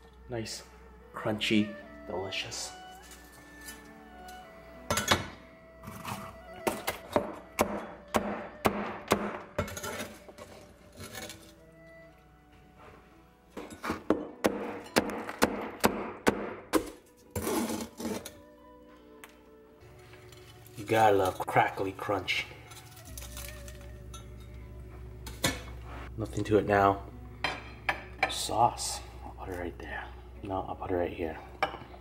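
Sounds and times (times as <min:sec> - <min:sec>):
background music: 0:00.0 - 0:32.0.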